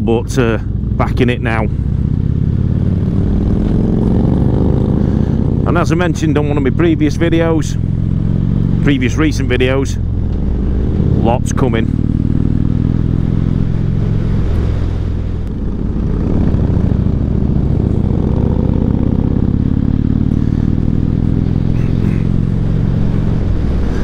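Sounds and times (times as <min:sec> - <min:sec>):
motorcycle engine running: 0:00.0 - 0:24.0.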